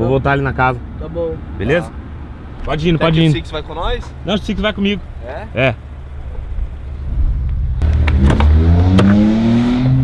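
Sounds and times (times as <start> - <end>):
vehicle engine accelerating: 4.0 - 10.0.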